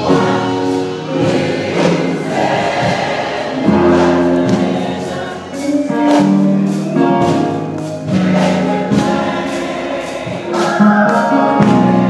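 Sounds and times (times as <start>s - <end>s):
gospel choir singing: 0.0s - 12.0s.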